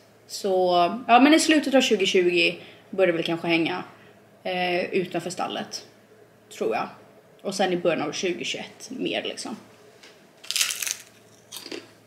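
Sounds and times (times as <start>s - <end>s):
chewing crunches: 10.4s - 12.0s
crunch of biting fried food: 10.4s - 12.0s.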